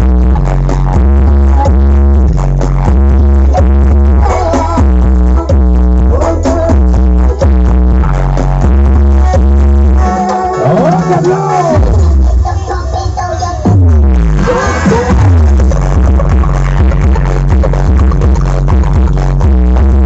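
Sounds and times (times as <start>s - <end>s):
loud dance music with heavy bass: 0.0s - 20.0s.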